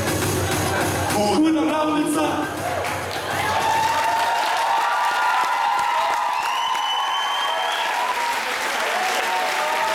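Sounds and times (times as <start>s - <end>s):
audience applauding and cheering: 2.4s - 9.9s
high steady whistle: 6.4s - 8.1s.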